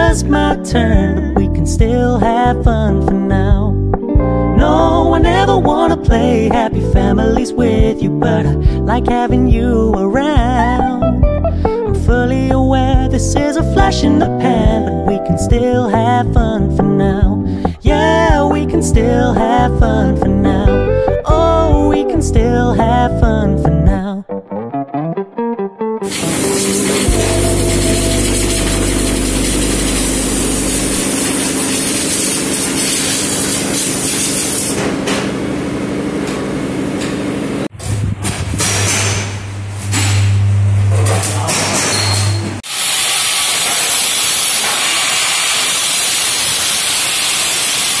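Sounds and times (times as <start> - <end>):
paint spray gun hissing: 26.1 - 34.8, 42.6 - 48.0
workshop machinery humming: 26.1 - 48.0
low machine hum: 27.1 - 31.8, 39.3 - 42.6.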